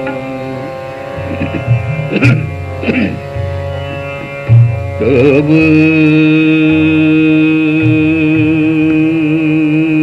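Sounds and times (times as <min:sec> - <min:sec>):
tabla strokes: 0:00.0 - 0:09.2
tanpura drone: 0:00.0 - 0:10.0.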